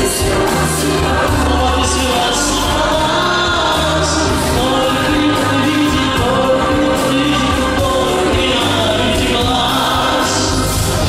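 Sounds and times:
choir-like sung vocals: 0:00.0 - 0:11.0
held bass notes: 0:00.0 - 0:11.0
live pop music: 0:00.0 - 0:11.0.

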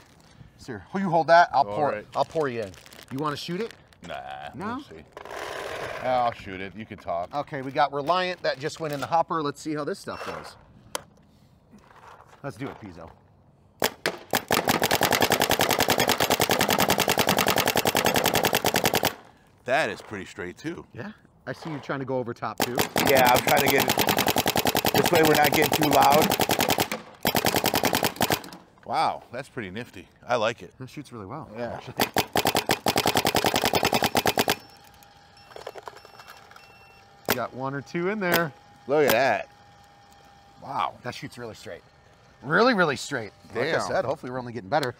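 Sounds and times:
paintball marker firing: 0:13.8 - 0:19.3, 0:22.6 - 0:28.6, 0:32.0 - 0:34.7.

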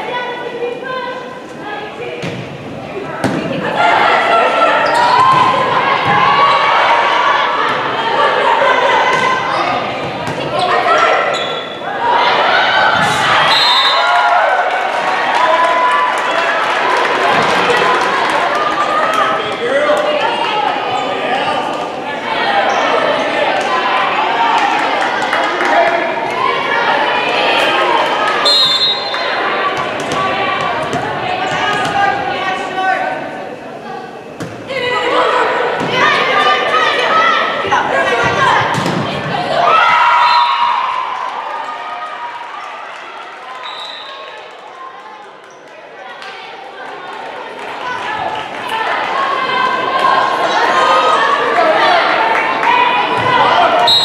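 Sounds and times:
chatter of voices: 0:00.0 - 0:54.0.

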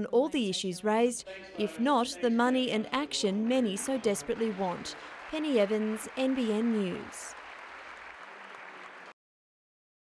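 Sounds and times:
audience applauding: 0:03.0 - 0:09.2.

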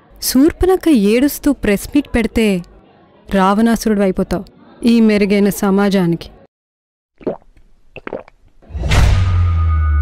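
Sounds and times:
wet gulp from a glass: 0:07.2 - 0:08.4.

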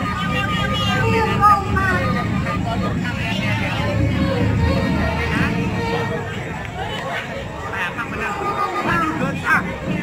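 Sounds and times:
steady low rumble: 0:00.0 - 0:08.1
crowd chatter: 0:00.0 - 0:10.0.

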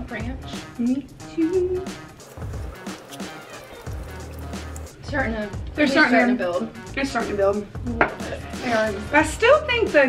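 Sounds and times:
soft music with low bass: 0:00.0 - 0:10.0.

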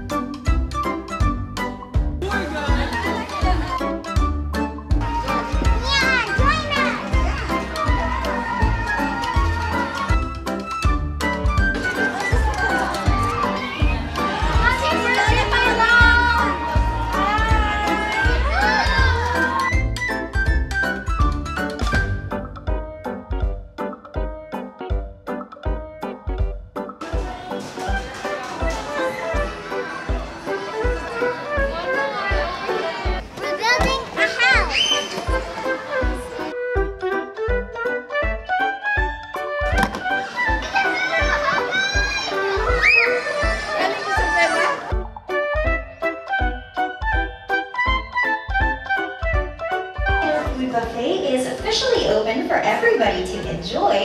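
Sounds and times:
children shouting and squealing: 0:05.1 - 0:10.4, 0:12.1 - 0:19.9, 0:28.4 - 0:36.4, 0:40.2 - 0:45.0.

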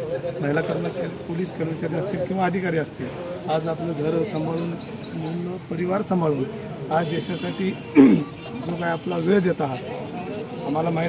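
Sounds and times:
man talking: 0:00.1 - 0:11.0.

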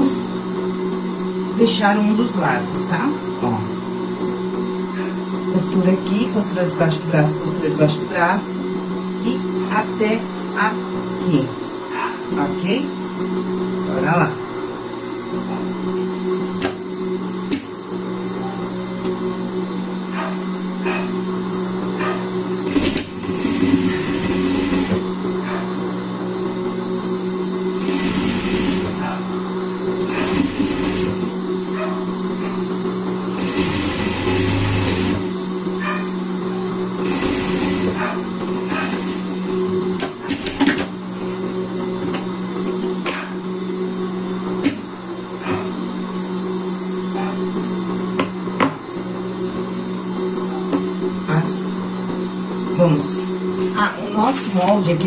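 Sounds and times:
sewing machine stitching: 0:22.6 - 0:25.0, 0:27.8 - 0:29.0, 0:30.0 - 0:31.3, 0:33.4 - 0:35.3, 0:37.0 - 0:39.3.

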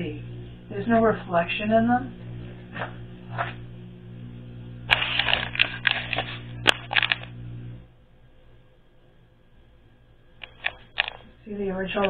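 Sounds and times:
low hum: 0:00.0 - 0:11.9.

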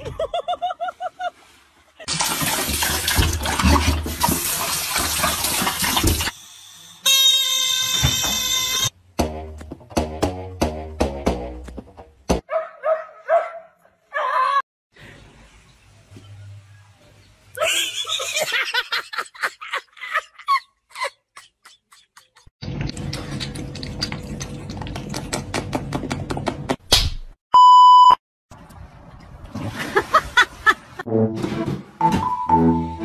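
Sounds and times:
censor bleep: 0:27.5 - 0:28.2.

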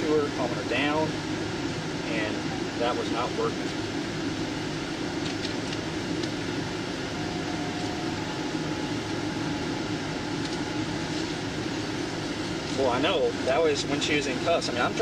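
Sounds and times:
air conditioning fan: 0:00.0 - 0:15.0
car engine idling: 0:00.0 - 0:15.0.

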